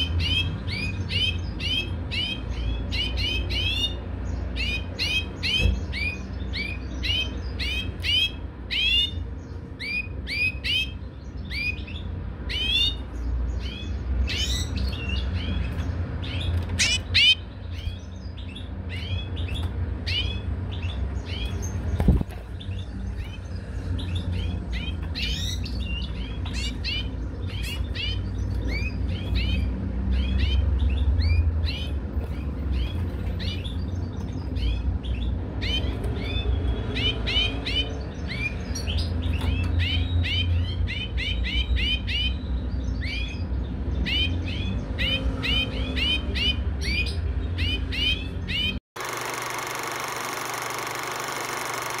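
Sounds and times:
goldfinches twittering: 0:00.0 - 0:52.0.

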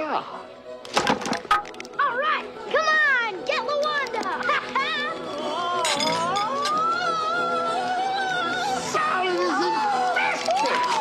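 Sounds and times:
orchestral film music: 0:00.0 - 0:11.0
people screaming and shrieking: 0:04.8 - 0:11.0.

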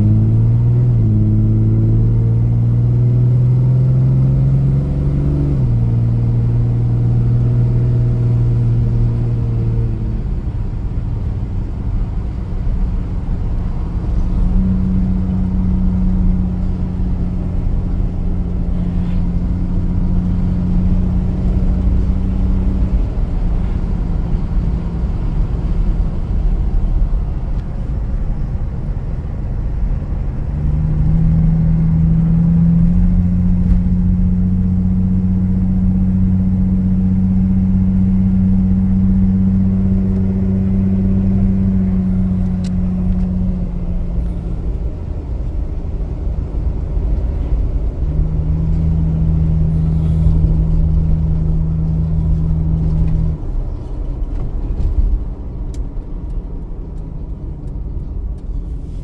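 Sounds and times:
car engine drone: 0:00.0 - 0:59.0
road rumble: 0:00.0 - 0:59.0.

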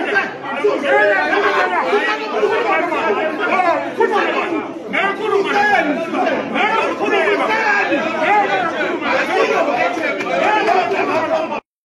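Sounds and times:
crowd of voices arguing: 0:00.0 - 0:11.7.

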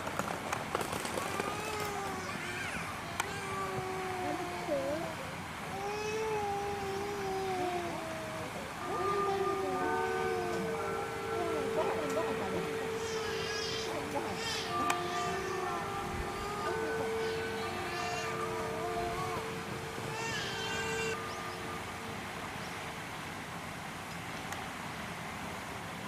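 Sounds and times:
high-pitched wavering calls: 0:06.2 - 0:23.4
steady tones: 0:06.3 - 0:25.6.

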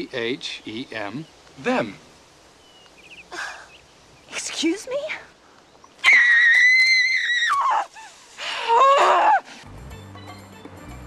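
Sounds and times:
woman screaming in rage: 0:06.0 - 0:07.9, 0:08.6 - 0:09.5.

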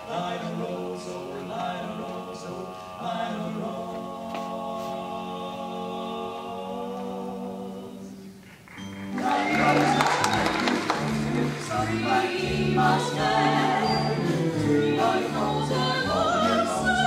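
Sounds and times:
young choir singing: 0:00.0 - 0:17.0.

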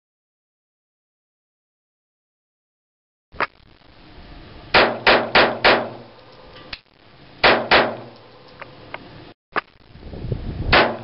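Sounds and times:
pistol shots: 0:04.7 - 0:06.1, 0:07.4 - 0:08.2, 0:10.7 - 0:11.0.

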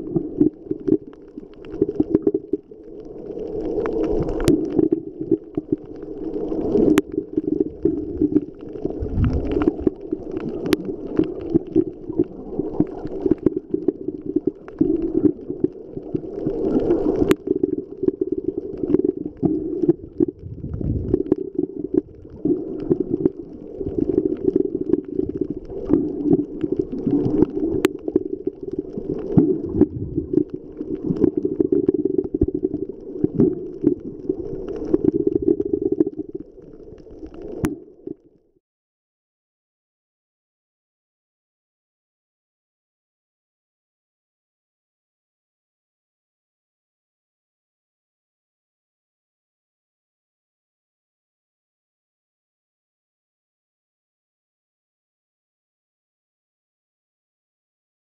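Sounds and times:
muffled underwater rumbling: 0:00.0 - 0:38.4.

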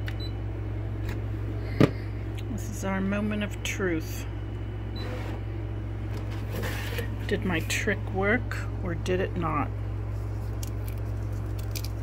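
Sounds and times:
cutting mat rustling scrape: 0:06.1 - 0:07.7.

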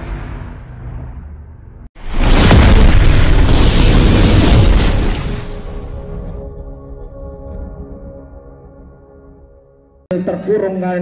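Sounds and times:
explosion boom with deep rumble: 0:02.0 - 0:06.7
music: 0:06.0 - 0:10.9.

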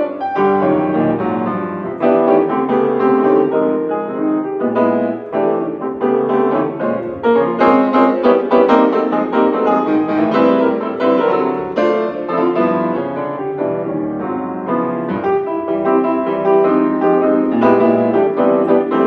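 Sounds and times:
solo grand piano: 0:00.0 - 0:19.0.

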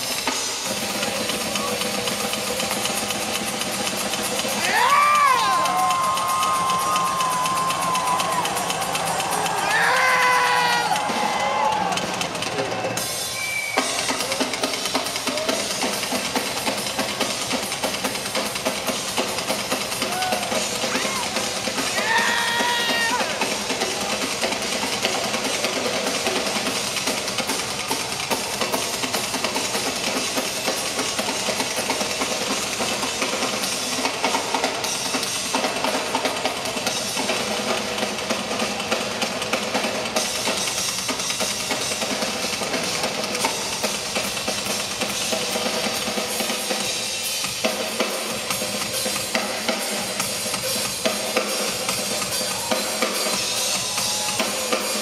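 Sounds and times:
live drum solo in an arena: 0:00.0 - 0:55.0.

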